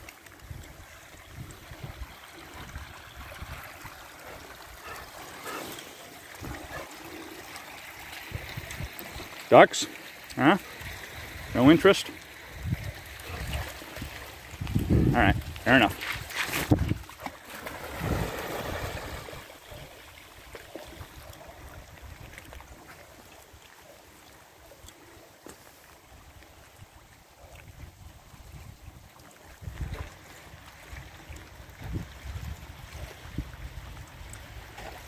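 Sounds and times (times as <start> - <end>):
wind rumbling on microphone: 0.0 - 5.0, 6.3 - 6.9, 12.5 - 17.2, 17.8 - 19.9, 26.2 - 34.8
waves lapping on stony shore: 0.0 - 27.7
dog splashing into water: 16.0 - 21.4.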